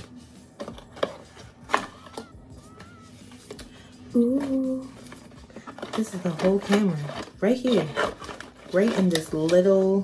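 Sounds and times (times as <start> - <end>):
cardboard and paper rustling: 0.0 - 10.0.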